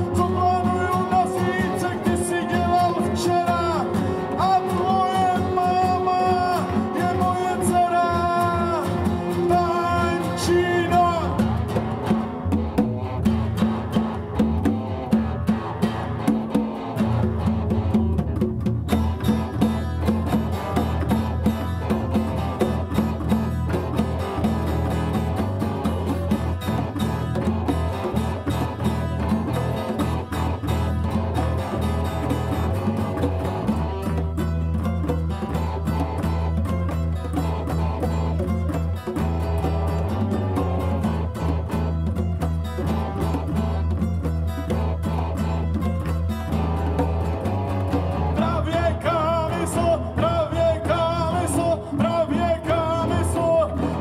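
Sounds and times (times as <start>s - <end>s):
person singing: 0.0s - 11.9s, 48.1s - 54.0s
live band playing: 0.0s - 54.0s
strummed acoustic guitar: 0.0s - 54.0s.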